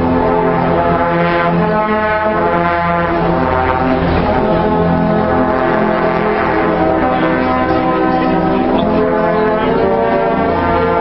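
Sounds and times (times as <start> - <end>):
brass band sustained chords: 0.0 - 11.0.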